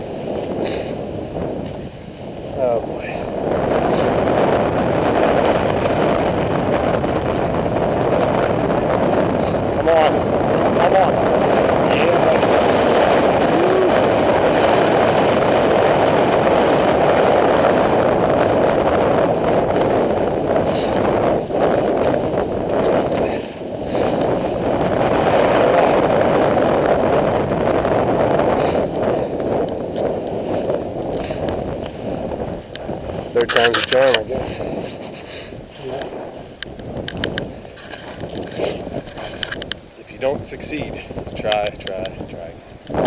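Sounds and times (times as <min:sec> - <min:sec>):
skis running over snow: 0:00.0 - 0:43.0
wind on microphone: 0:00.0 - 0:43.0.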